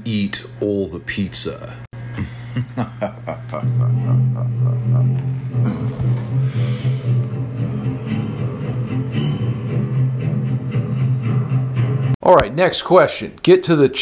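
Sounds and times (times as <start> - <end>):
held low note: 2.6 - 11.3.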